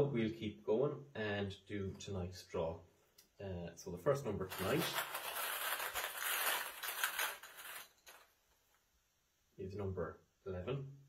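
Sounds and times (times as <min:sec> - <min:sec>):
bag crinkling with balls stirred: 0:04.4 - 0:08.3.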